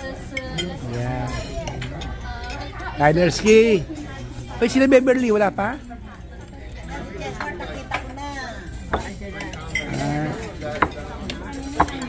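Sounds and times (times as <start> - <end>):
cutlery and dishes clinking: 0.2 - 12.0.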